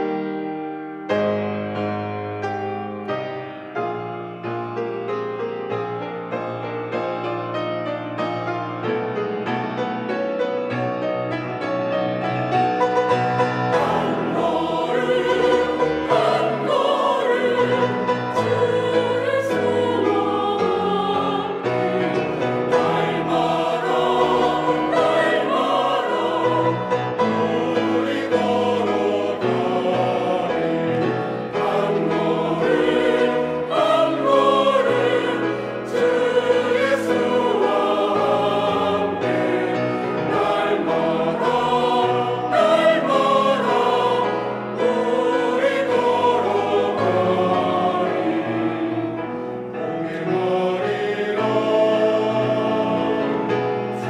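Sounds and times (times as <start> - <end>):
grand piano accompaniment: 0.0 - 54.0
church choir singing hymn: 11.5 - 54.0.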